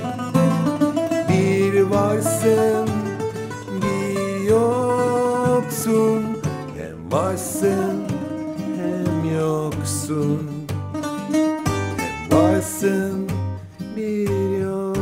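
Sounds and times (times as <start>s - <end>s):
man singing: 0.0s - 10.8s, 11.9s - 15.0s
acoustic guitar strumming: 0.0s - 15.0s
bouzouki plucked melody: 0.0s - 15.0s.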